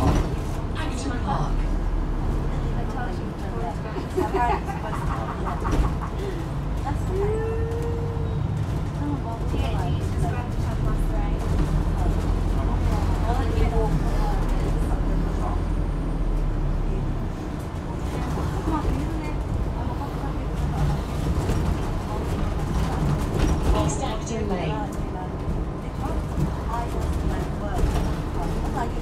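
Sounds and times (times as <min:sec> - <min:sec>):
bus drivetrain and road rumble: 0:00.0 - 0:29.0
faint passenger chatter: 0:00.0 - 0:29.0.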